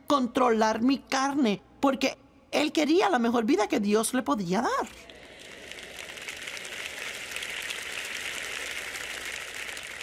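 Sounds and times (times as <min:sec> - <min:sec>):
audience applause: 0:05.2 - 0:10.0.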